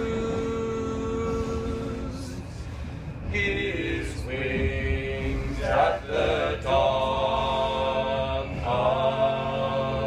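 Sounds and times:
choir singing in harmony: 0.0 - 10.0
low train rumble: 0.0 - 10.0.

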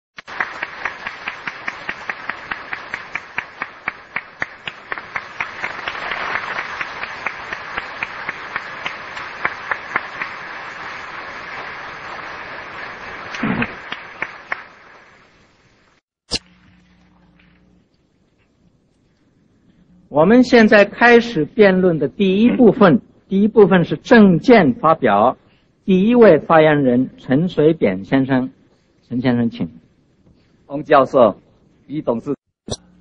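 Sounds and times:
sharp individual claps: 0.2 - 11.6, 12.8 - 14.9
audience applauding: 0.2 - 15.4.

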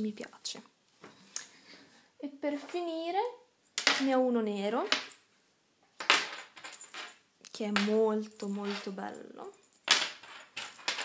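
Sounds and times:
metallic jingle and clatter: 6.0 - 7.2, 7.8 - 11.0.

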